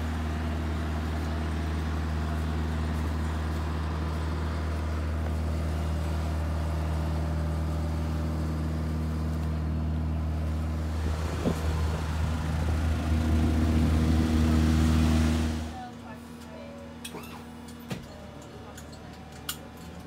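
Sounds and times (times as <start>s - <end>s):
engine drone: 0.0s - 20.0s.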